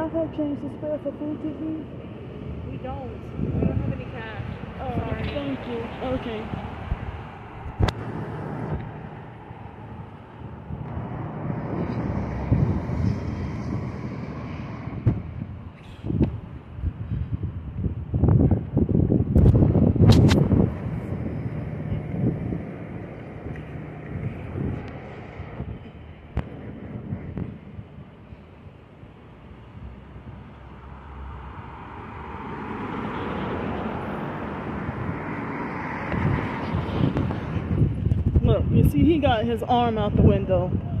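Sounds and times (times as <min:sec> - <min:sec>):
wind buffeting microphone: 0:00.0 - 0:30.4, 0:31.5 - 0:41.0
street traffic rumble: 0:00.0 - 0:41.0.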